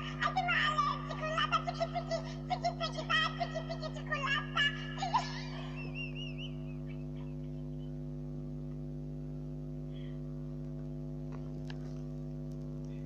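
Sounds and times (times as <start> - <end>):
high wavering voice: 0.0 - 6.5
steady electrical hum: 0.0 - 13.0.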